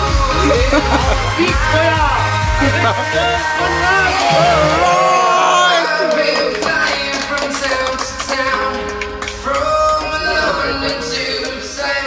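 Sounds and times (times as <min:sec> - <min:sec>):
music with singing voice: 0:00.0 - 0:12.0
hand claps: 0:06.0 - 0:11.8.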